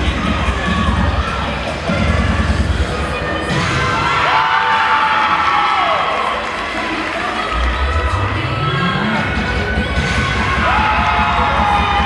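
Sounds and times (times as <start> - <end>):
music with heavy beat: 0.0 - 6.0, 6.9 - 12.0
crowd cheering and shouting: 0.0 - 12.0.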